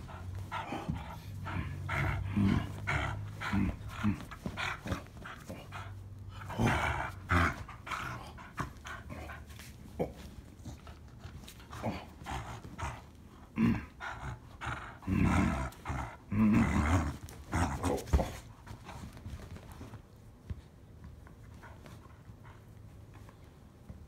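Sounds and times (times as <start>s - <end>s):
dog growling in play: 0.0s - 9.3s, 11.7s - 18.4s.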